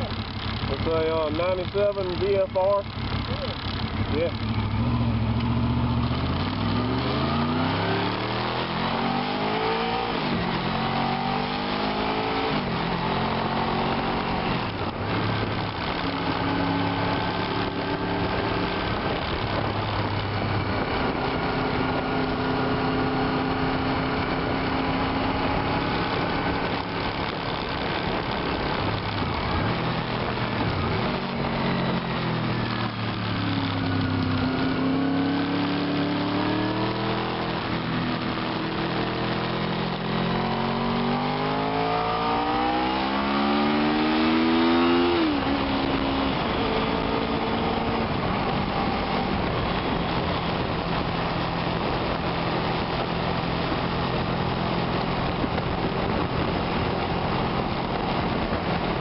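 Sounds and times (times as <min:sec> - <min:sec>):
motorcycle engine accelerating: 0:00.0 - 0:59.0.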